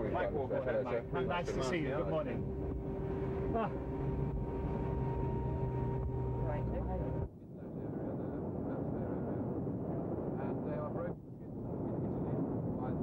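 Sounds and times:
aircraft engine humming and whining: 0.0s - 7.3s
rough steady rumble: 0.0s - 7.3s
voices: 0.0s - 7.3s.

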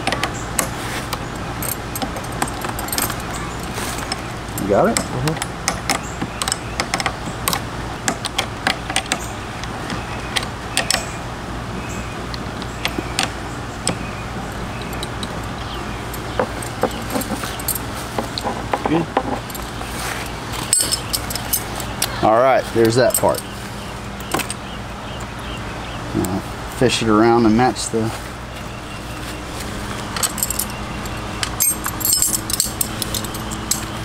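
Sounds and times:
light metallic clicks and clinks: 0.0s - 7.6s, 14.5s - 18.5s, 19.3s - 22.2s, 22.8s - 23.6s, 30.1s - 34.0s
steady low hum: 0.0s - 34.0s.

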